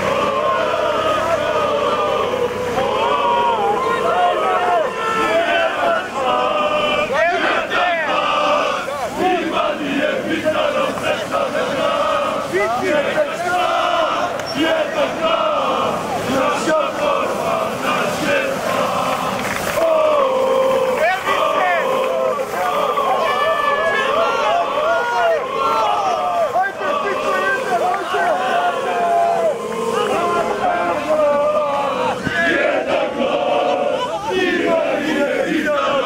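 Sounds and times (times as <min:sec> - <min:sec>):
crowd chanting and shouting: 0:00.0 - 0:36.0.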